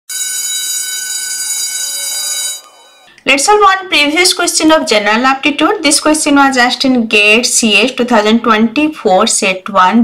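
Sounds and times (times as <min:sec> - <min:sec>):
bright steady electronic tone: 0:00.1 - 0:03.2.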